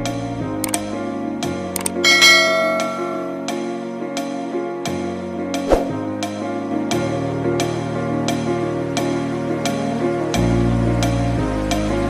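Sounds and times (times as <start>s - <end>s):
background music: 0.0s - 12.0s
quick clicks: 0.6s - 0.9s, 1.8s - 2.0s
notification bell chime: 2.0s - 3.7s.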